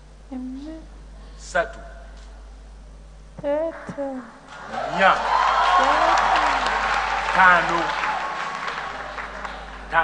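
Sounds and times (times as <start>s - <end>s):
congregation applause: 4.5s - 10.0s
man speaking: 4.7s - 5.2s, 7.3s - 8.0s.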